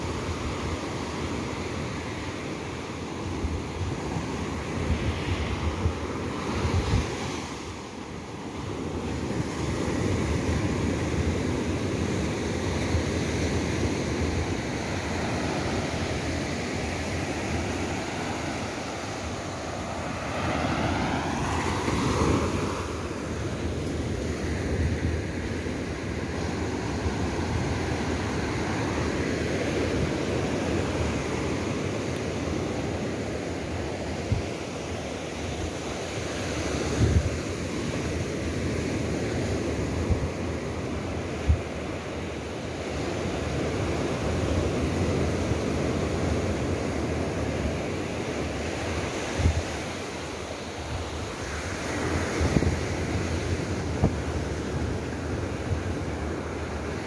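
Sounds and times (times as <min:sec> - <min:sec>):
surf washing up a beach: 0:00.0 - 0:57.0
wind buffeting microphone: 0:03.3 - 0:07.9, 0:36.8 - 0:37.7, 0:50.8 - 0:57.0.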